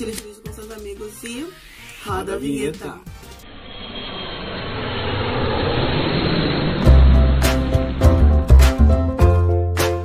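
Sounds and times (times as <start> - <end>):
rising whoosh riser: 3.2 - 9.2
intro jingle: 3.5 - 9.4.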